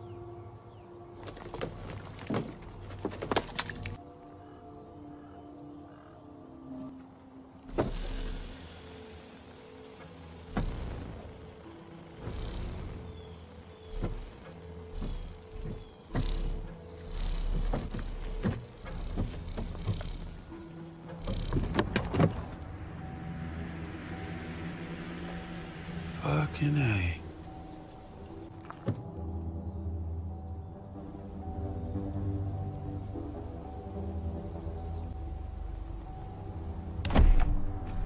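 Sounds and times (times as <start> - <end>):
dramatic film score: 0.0 - 38.0.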